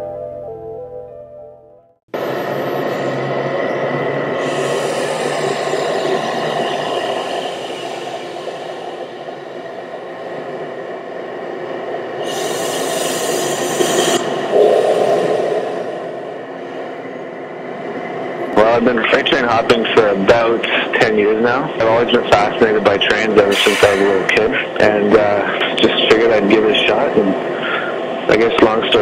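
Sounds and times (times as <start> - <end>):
locomotive engine drone: 2.0 - 29.0
freight train rumbling: 2.1 - 29.0
burst of hiss: 4.4 - 9.5, 12.2 - 16.0, 23.5 - 24.3.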